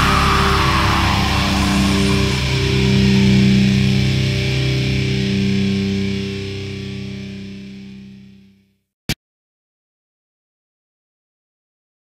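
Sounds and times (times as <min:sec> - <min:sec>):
distorted electric guitar chord: 0:00.0 - 0:08.6
nu metal music: 0:00.0 - 0:08.6.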